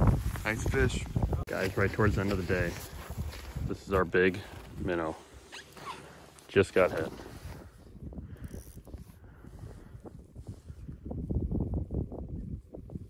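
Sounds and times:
wind on microphone: 0:00.0 - 0:04.9, 0:06.8 - 0:13.0
fishing rod and reel worked: 0:08.4 - 0:09.2.

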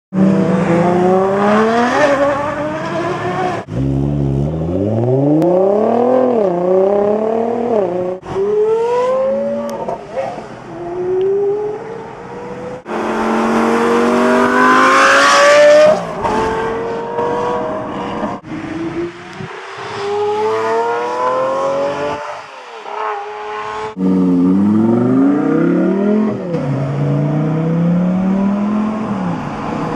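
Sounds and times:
sports car engines accelerating: 0:00.2 - 0:29.9.

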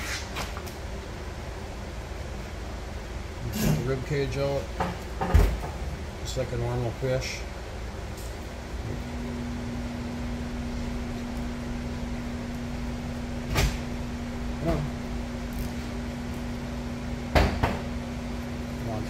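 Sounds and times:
steady low hum: 0:00.0 - 0:19.0
sharp knocks: 0:17.3 - 0:17.9.

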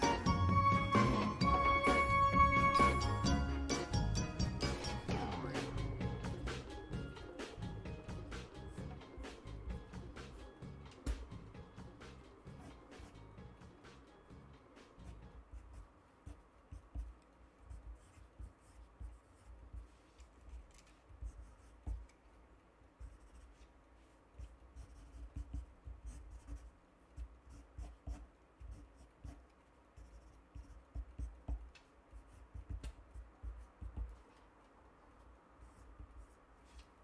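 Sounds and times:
pen scratching on paper: 0:15.0 - 0:22.1, 0:23.0 - 0:23.7, 0:24.4 - 0:34.3.

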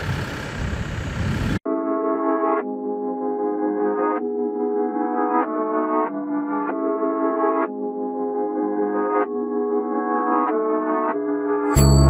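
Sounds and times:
sustained synthesizer chords: 0:01.7 - 0:12.0.

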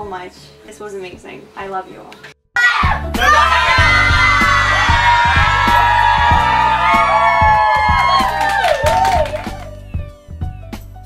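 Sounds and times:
people cheering and whooping: 0:02.6 - 0:09.8
music with steady bass line: 0:02.8 - 0:11.0.

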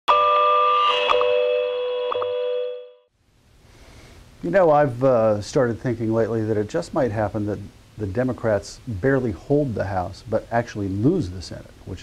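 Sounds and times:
electronic chime chord: 0:00.1 - 0:03.1.

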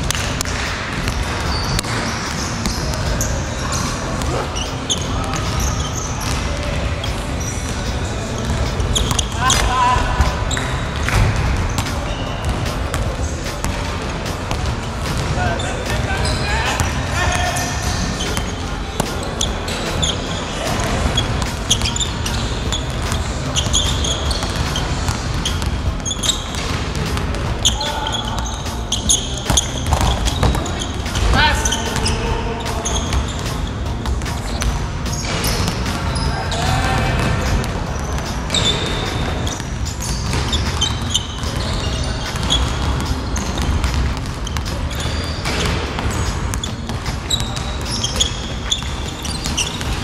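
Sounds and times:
sneakers squeaking: 0:00.0 - 0:50.0
basketball bouncing on hardwood floor: 0:29.4 - 0:31.3, 0:38.6 - 0:50.0.

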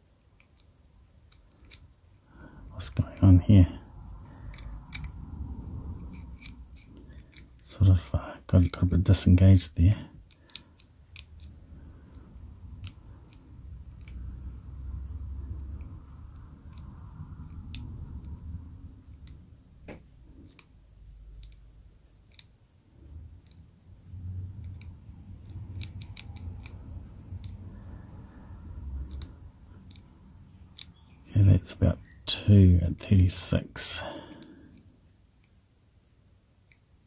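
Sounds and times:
padlock dial clicks: 0:24.6 - 0:26.8.

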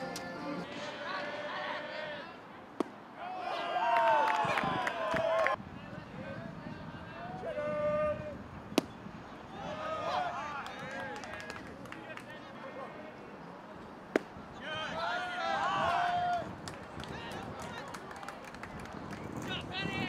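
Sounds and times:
baseball smacking into mitt: 0:02.8 - 0:03.0, 0:08.7 - 0:09.0, 0:14.1 - 0:14.4
voices shouting: 0:03.2 - 0:05.6, 0:09.5 - 0:11.1, 0:14.5 - 0:16.5.

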